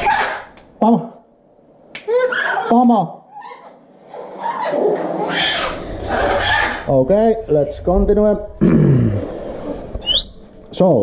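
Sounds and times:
harsh animal call: 2.1 - 7.0
low rumble: 5.9 - 10.7.

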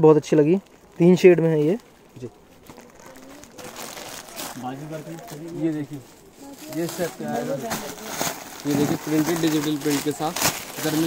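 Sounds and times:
plastic wrapping crinkling: 0.4 - 11.0
faint voices: 0.7 - 11.0.

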